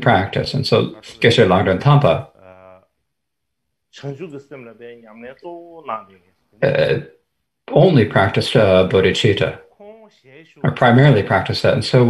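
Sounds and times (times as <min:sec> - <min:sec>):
man's voice: 0:00.0 - 0:02.8, 0:04.0 - 0:07.1, 0:07.7 - 0:12.0.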